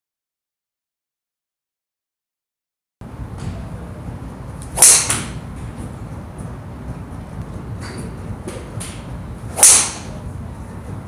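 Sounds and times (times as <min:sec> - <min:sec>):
golf club swishing and striking ball: 0:04.6 - 0:05.7, 0:07.8 - 0:10.2.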